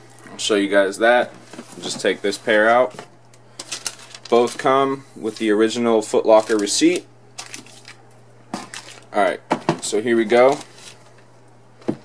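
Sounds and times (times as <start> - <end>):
paper and cardboard rustling: 3.6 - 8.0, 8.6 - 9.1, 10.2 - 11.2.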